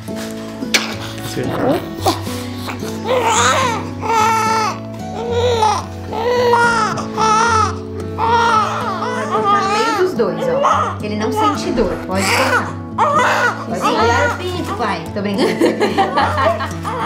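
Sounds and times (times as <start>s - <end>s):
soft music with sustained chords: 0.0s - 17.0s
newborn baby crying: 0.7s - 14.8s, 16.7s - 17.0s.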